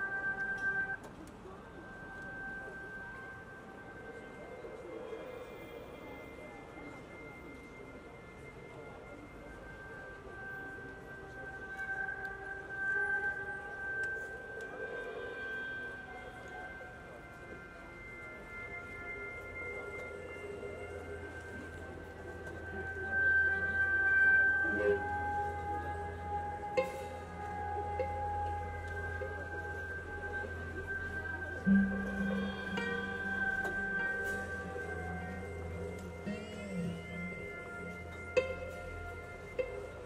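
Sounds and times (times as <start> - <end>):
ambient synthesizer music: 0.0 - 40.0
low hum: 20.5 - 40.0
deep low note: 24.5 - 39.8.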